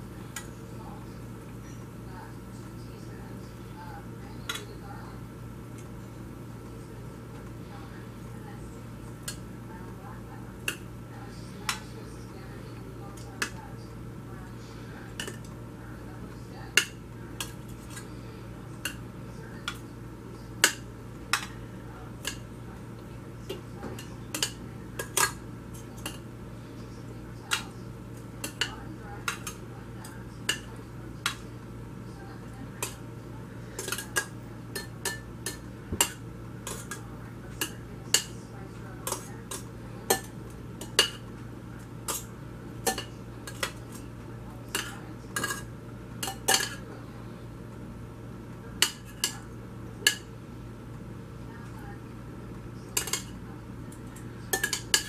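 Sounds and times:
steady low hum: 0.0s - 55.0s
metal tongs clinking on pans: 9.2s - 9.4s, 15.1s - 15.5s, 16.7s - 18.1s, 20.6s - 21.6s, 22.2s - 22.5s, 23.5s - 26.3s, 27.4s - 31.4s, 32.8s - 33.0s, 33.6s - 41.3s, 42.0s - 44.1s, 44.7s - 46.8s, 48.8s - 50.3s, 52.9s - 55.0s.

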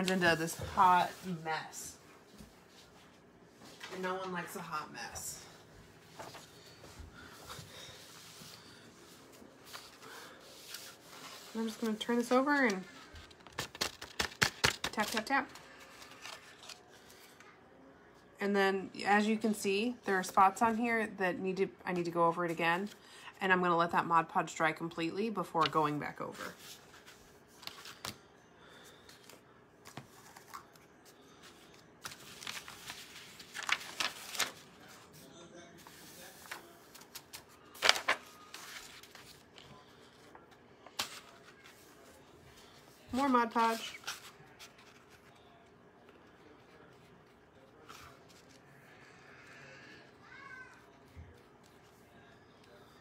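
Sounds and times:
vinyl sheet rustling: 0.0s - 4.6s, 5.4s - 17.4s, 25.6s - 45.6s.

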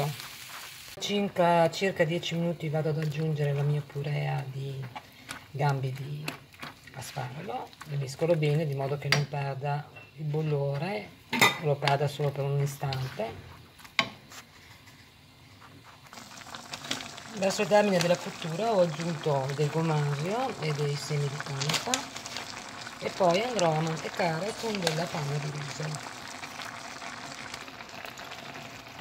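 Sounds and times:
risotto bubbling in a pan: 0.0s - 9.5s, 14.6s - 29.0s
faint crackle: 13.8s - 29.0s.

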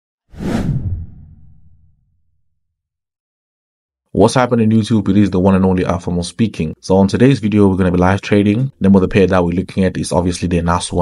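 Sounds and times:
whoosh sound effect: 0.3s - 2.2s
deep low rumble: 0.4s - 2.4s.

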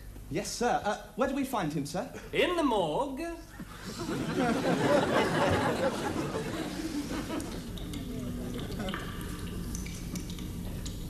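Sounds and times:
water dripping: 4.7s - 11.0s.

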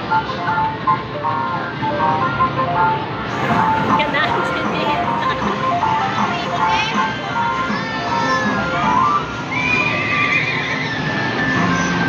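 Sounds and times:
electronic jingle notes: 1.9s - 7.9s
crowd chatter: 3.3s - 10.8s.

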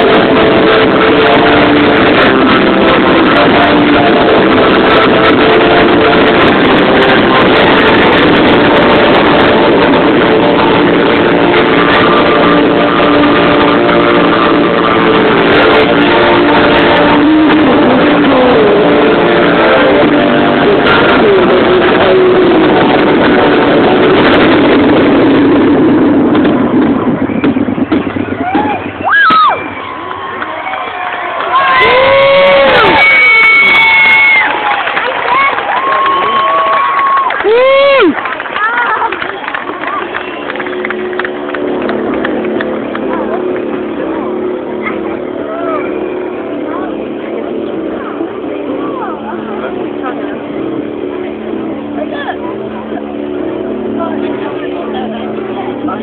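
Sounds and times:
fireworks bursting: 0.0s - 48.1s
display music: 0.0s - 56.0s
crowd whooping: 26.4s - 47.2s.

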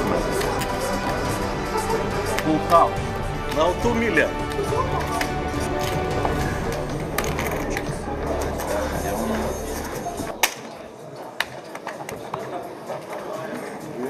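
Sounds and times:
background music with low bass: 0.0s - 10.6s.

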